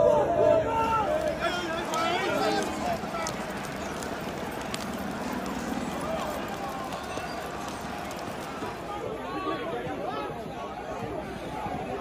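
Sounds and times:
crowd shouting: 0.0s - 12.0s
booted feet running on tarmac: 0.8s - 10.0s.

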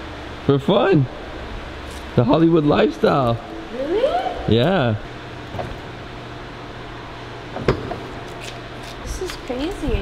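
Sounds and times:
low hum of parking garage: 0.0s - 10.0s.

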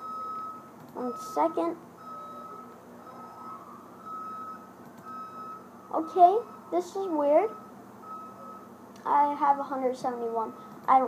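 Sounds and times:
reversing alarm beeping: 0.0s - 8.8s, 10.2s - 10.7s.

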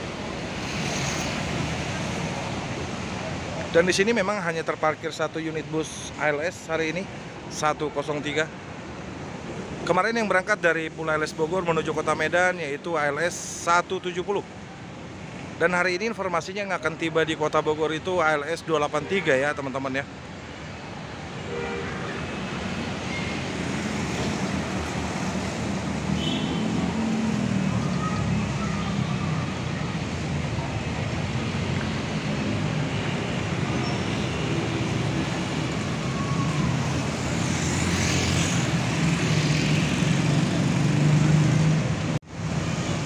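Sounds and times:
passing vehicles: 0.0s - 43.0s.

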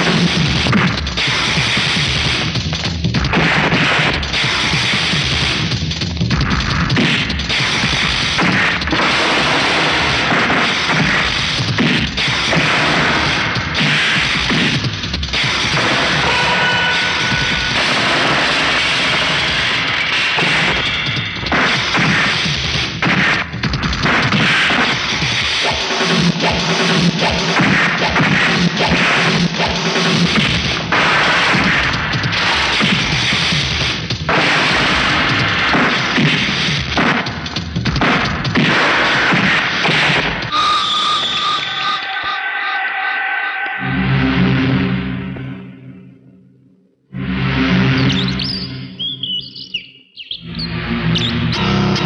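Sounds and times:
punch and crash sound effects: 15.6s - 25.0s, 34.3s - 40.5s
background music: 38.5s - 52.0s.

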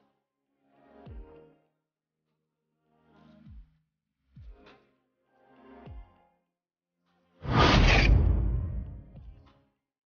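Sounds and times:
whoosh with deep rumble: 7.5s - 9.2s.

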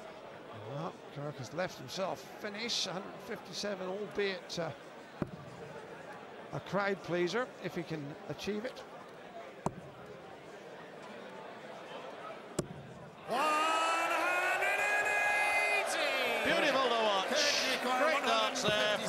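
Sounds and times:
darts thudding into dartboard: 9.6s - 9.9s, 12.6s - 12.9s
crowd cheering: 13.2s - 19.0s.

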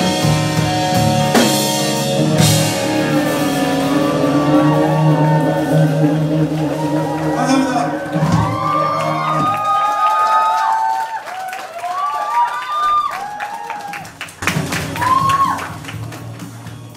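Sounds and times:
electric guitar chord: 0.0s - 9.6s
audience cheering and clapping: 2.4s - 16.9s.

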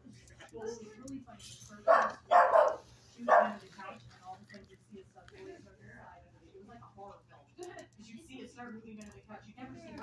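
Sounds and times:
dog barking: 1.8s - 3.6s.

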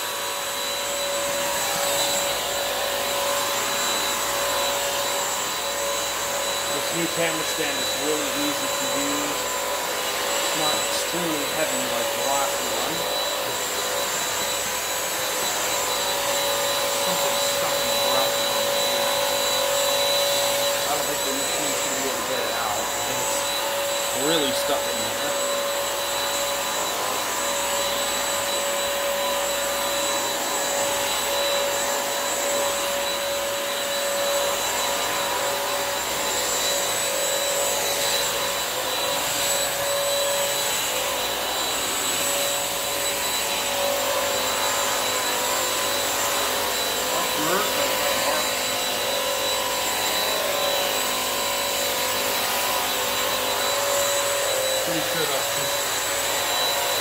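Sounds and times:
mop vacuum running: 0.0s - 57.0s.

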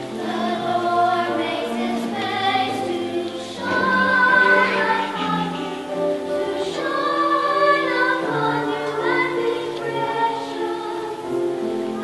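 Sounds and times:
choir singing slow choral piece: 0.0s - 12.0s.

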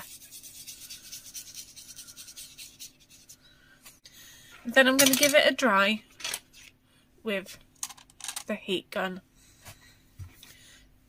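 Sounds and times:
paintbrush scrubbing on paper: 0.0s - 3.4s.

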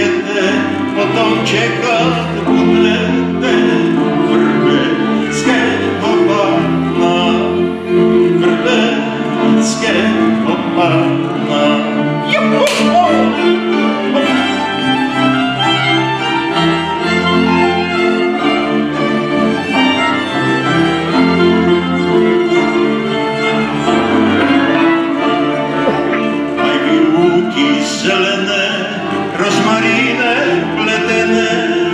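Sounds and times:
low bowed strings: 0.0s - 31.9s
violins: 0.0s - 31.9s.

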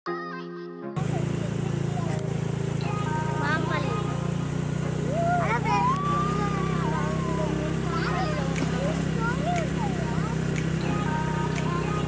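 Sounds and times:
vehicle engine running: 1.0s - 12.0s
person singing a long note: 2.8s - 5.1s, 9.6s - 12.0s.

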